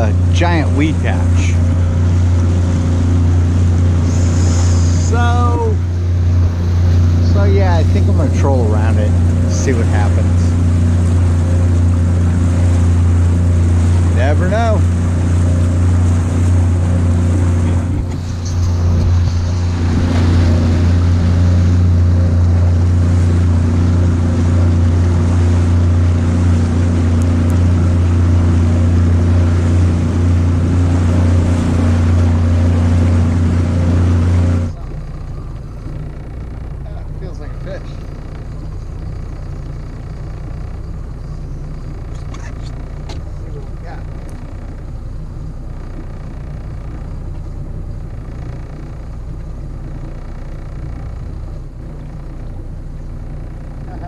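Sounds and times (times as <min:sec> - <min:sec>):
low motor hum: 0:00.0 - 0:54.0
outboard motor running: 0:00.0 - 0:54.0.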